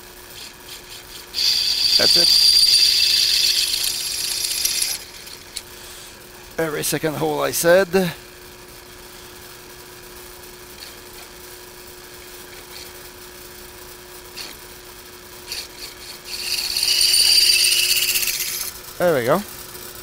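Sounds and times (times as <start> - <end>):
drill press humming: 0.0 - 6.4, 14.4 - 19.0
drill bit cutting sheet metal: 0.4 - 5.5, 15.4 - 18.8.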